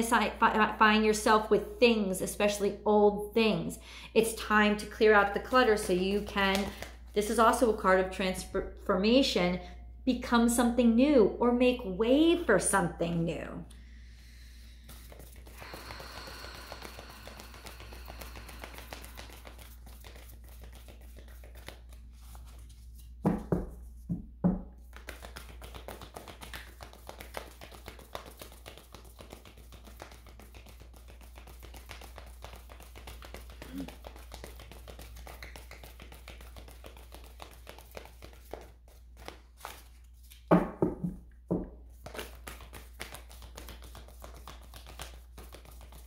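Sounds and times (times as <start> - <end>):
cards being shuffled: 5.6 - 7.8, 14.8 - 23.2, 24.8 - 40.5, 41.9 - 46.0.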